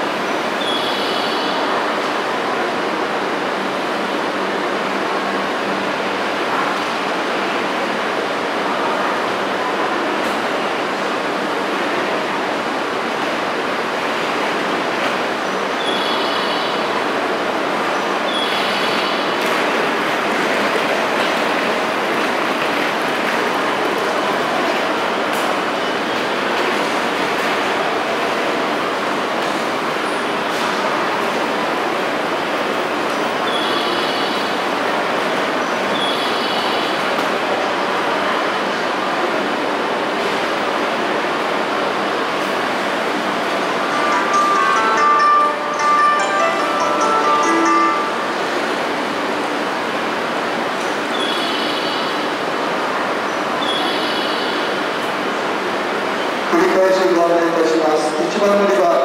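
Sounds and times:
electric train humming: 36.9 - 51.2.

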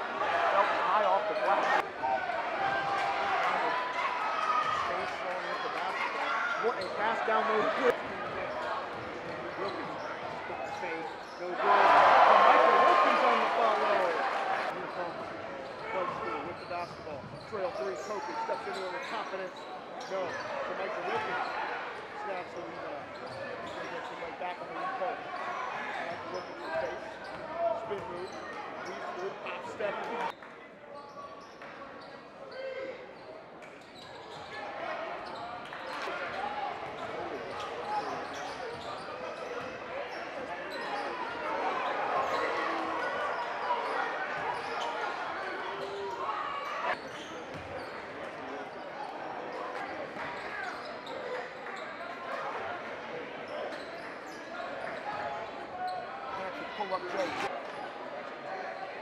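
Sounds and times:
crowd chatter in a large hall: 0.0 - 59.0.

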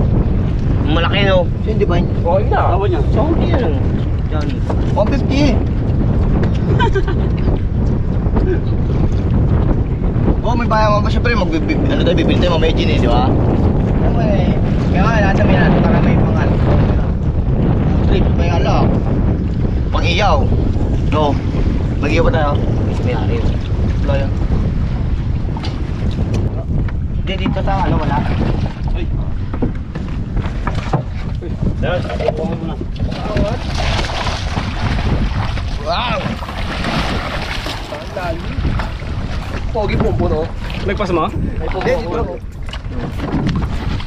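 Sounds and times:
water rushing around boat: 0.0 - 44.0
wind buffeting microphone: 0.0 - 44.0.

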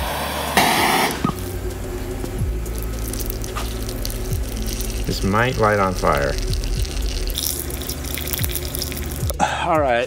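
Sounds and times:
torch flame hissing: 0.0 - 9.4
background music low tones: 0.0 - 10.0.

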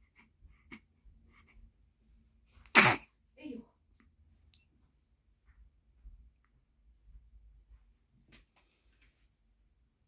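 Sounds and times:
baby sneezing: 2.7 - 3.1.

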